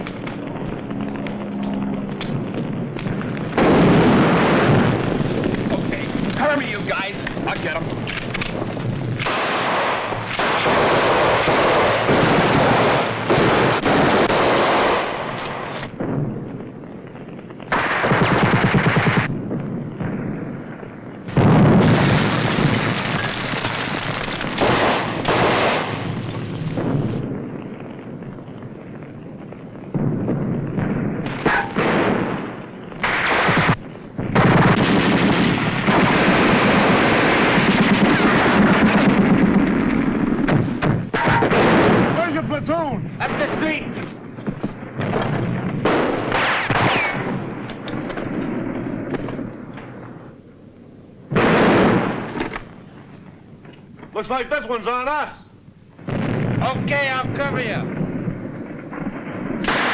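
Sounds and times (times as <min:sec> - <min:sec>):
machine-gun fire: 0:03.4 - 0:16.4, 0:17.7 - 0:19.4, 0:21.3 - 0:27.7, 0:29.9 - 0:49.4, 0:51.3 - 0:52.6, 0:56.0 - 0:59.9
rifle shots: 0:03.4 - 0:16.4, 0:17.7 - 0:19.4, 0:21.3 - 0:27.6, 0:29.9 - 0:44.1, 0:44.7 - 0:50.0, 0:51.3 - 0:52.7, 0:56.0 - 0:59.9.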